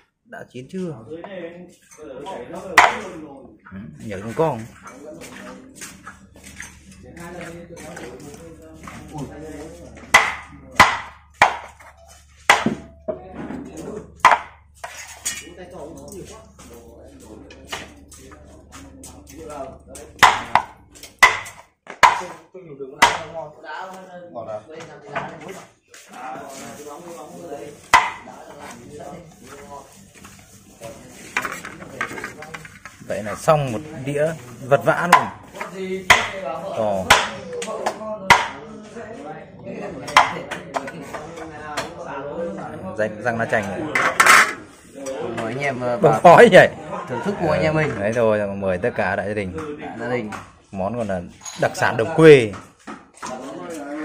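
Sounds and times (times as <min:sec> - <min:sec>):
cleaver chopping bone on wood: 0:02.8 - 0:03.0, 0:10.1 - 0:11.9, 0:12.5 - 0:12.8, 0:14.2 - 0:14.6, 0:20.2 - 0:22.4, 0:23.0 - 0:23.3, 0:27.9 - 0:28.2, 0:36.1 - 0:36.4, 0:37.0 - 0:38.6, 0:40.1 - 0:40.4.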